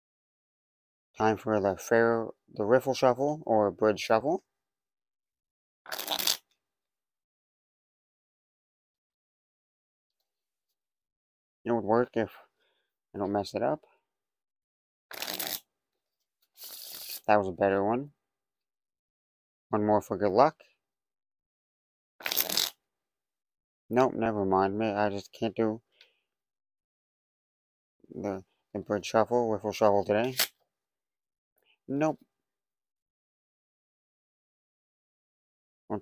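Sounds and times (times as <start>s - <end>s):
playing cards riffle-shuffled: 5.9s - 6.4s, 15.1s - 15.6s, 16.6s - 17.3s, 22.2s - 22.7s, 30.2s - 30.5s.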